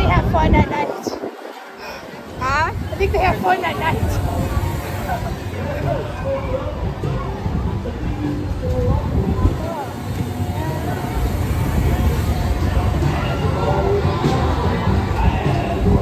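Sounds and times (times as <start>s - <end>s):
carnival ride rumble: 0.0s - 16.0s
crowd chatter: 0.0s - 16.0s.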